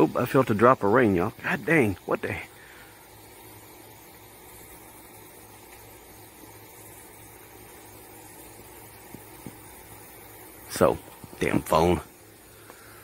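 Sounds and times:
outdoor background noise: 0.0s - 13.0s.

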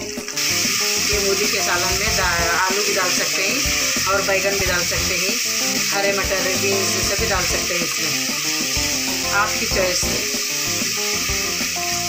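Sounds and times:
frying in oil sizzle: 0.0s - 12.0s
instrumental music: 0.0s - 12.0s.

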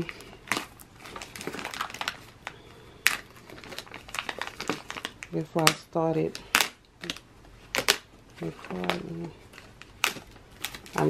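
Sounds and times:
plastic mailer crinkling: 0.0s - 11.0s.

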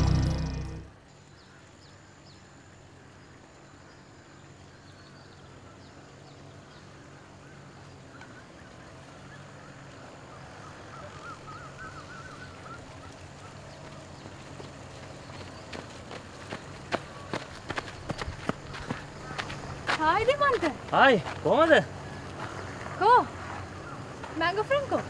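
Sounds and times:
low steady outdoor hum: 0.0s - 25.0s
bird warbling: 9.3s - 13.7s
footsteps jogging on pavement: 12.8s - 25.0s.

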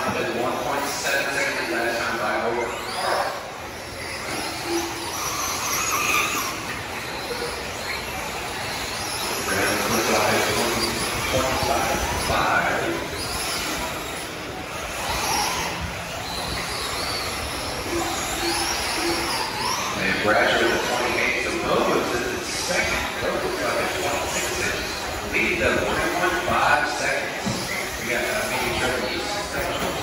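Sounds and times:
electric toy car motors whining: 0.7s - 30.0s.

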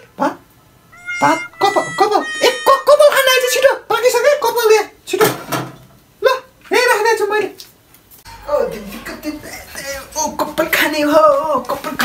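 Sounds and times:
person exclaiming: 1.0s - 3.7s.

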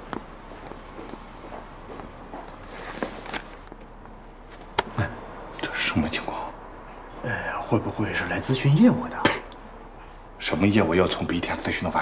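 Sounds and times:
soft footsteps: 0.0s - 4.9s.

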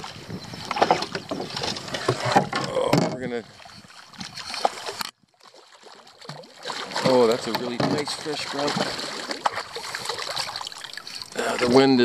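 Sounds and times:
water lapping against canoe: 0.0s - 12.0s
fish thrashing in net: 4.3s - 11.7s.

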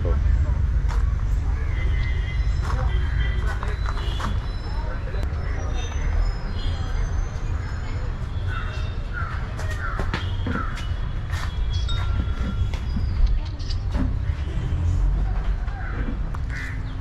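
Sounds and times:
steady low rumble: 0.0s - 3.0s.

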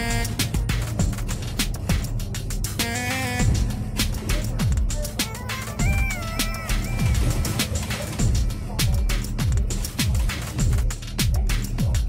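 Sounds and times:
electronic beat: 0.0s - 12.0s.

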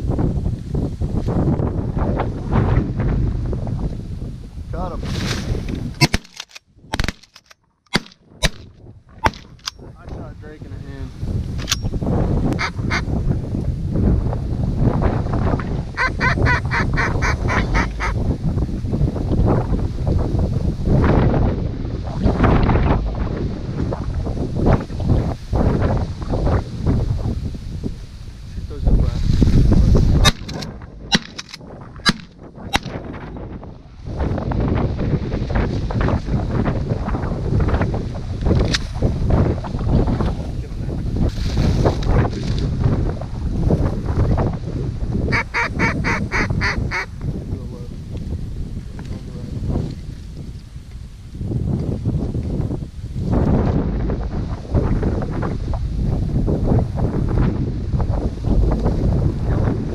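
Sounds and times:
wind on microphone: 0.0s - 59.9s
ducks quacking: 12.6s - 13.0s, 16.0s - 18.2s, 45.3s - 47.1s
geese honking: 12.6s - 13.0s, 16.0s - 18.2s, 45.3s - 47.1s.

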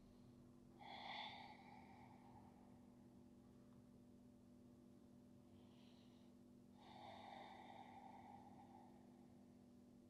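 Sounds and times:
faint low hum: 0.0s - 10.0s
slow exhaled breath: 5.7s - 9.4s.

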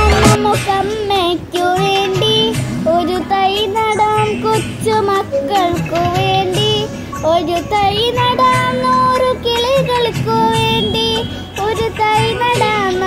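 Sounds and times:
high voice singing: 0.0s - 13.0s
instrumental backing track: 0.0s - 13.0s.

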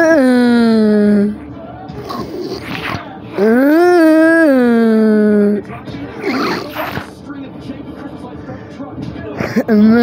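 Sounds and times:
low busy background noise: 0.0s - 10.0s
indistinct voice sounds: 2.1s - 7.2s.

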